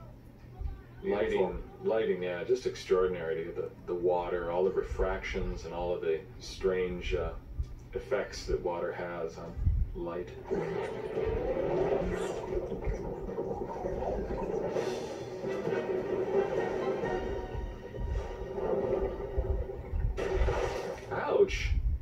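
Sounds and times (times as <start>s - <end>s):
film music sustained note: 14.4s - 20.0s
low rumble: 17.2s - 20.9s.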